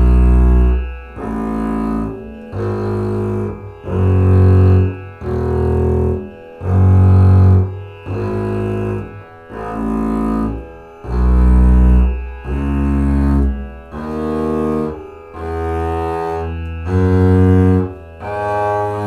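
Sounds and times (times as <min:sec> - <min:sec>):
bowed double bass notes: 0:00.0 - 0:19.0.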